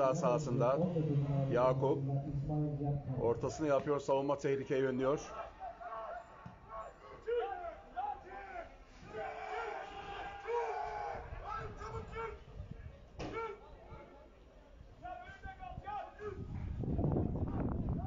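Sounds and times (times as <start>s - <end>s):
players shouting: 5.2s - 12.5s.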